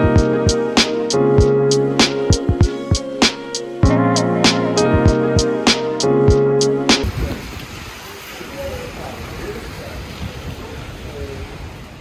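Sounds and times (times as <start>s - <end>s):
intro music with a beat: 0.0s - 7.1s
rain hissing on wet street: 6.9s - 12.0s.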